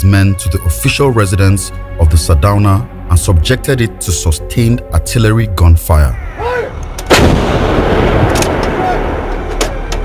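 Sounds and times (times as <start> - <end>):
artillery blast: 7.0 - 9.9
faint cracks: 8.2 - 10.0.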